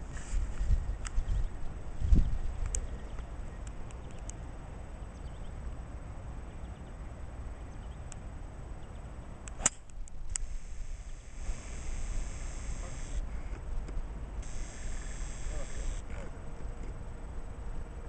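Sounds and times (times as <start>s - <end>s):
steady low rumble: 0.0s - 18.0s
golf club striking ball: 9.5s - 9.9s.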